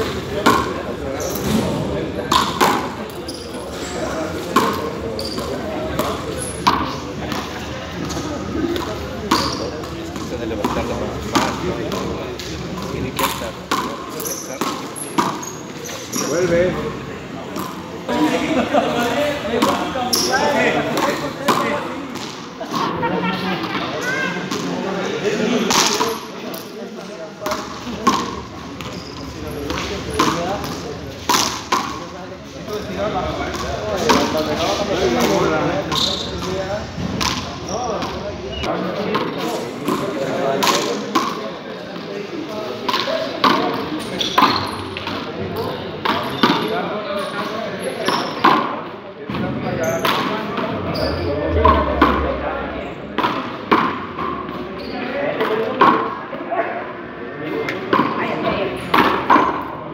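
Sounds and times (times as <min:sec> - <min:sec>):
ball hitting walls and floor: 0:00.4 - 0:03.4.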